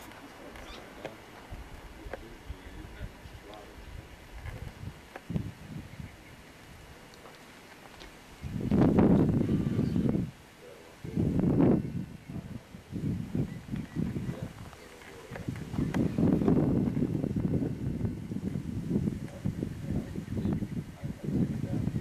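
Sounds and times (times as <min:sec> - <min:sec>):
wind gusting on microphone: 0:00.0 - 0:22.0.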